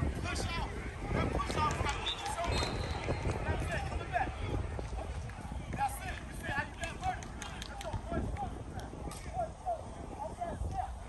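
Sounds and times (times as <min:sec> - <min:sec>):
players and coaches calling out: 0:00.0 - 0:11.0
wind rumbling on microphone: 0:00.0 - 0:11.0.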